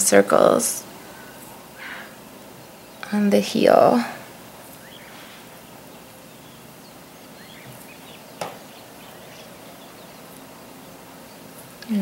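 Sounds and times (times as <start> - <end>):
steady low hiss: 0.0 - 12.0
faint bird chirps: 4.2 - 12.0.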